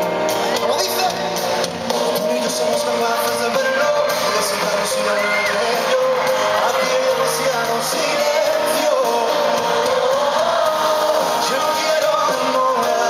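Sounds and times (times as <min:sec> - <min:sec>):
man singing with live band: 0:01.8 - 0:13.0.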